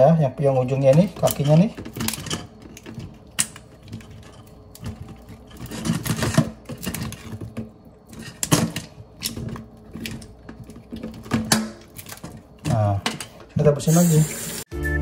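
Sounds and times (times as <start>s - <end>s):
crab shells cracking: 1.0s - 13.2s.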